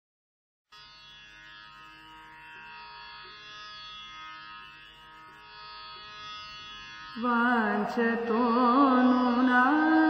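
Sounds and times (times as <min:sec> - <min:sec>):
tanpura drone: 0:00.7 - 0:10.0.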